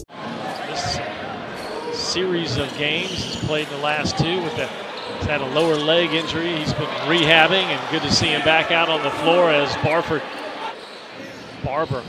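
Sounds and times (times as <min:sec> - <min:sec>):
crowd murmur: 0:00.0 - 0:10.8.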